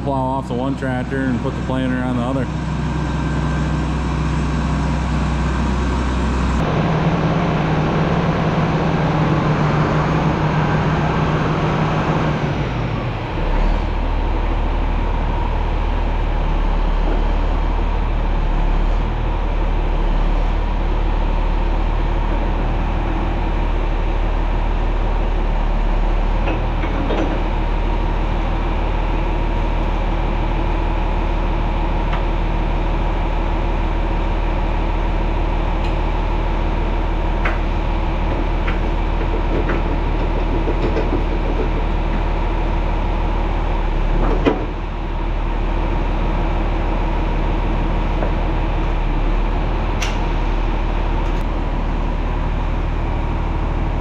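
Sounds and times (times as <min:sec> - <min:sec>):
diesel tractor engine idling: 0:00.0 - 0:54.0.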